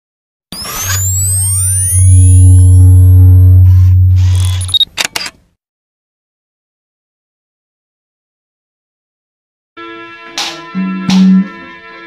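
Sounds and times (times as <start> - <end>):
rising sweeping tones: 0.6 - 4.6
deep steady drone: 1.6 - 4.7.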